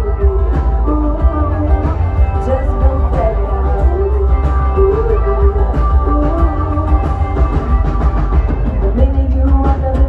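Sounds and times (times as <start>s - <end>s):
booming bass: 0.0s - 10.0s
live band through pa: 0.0s - 10.0s.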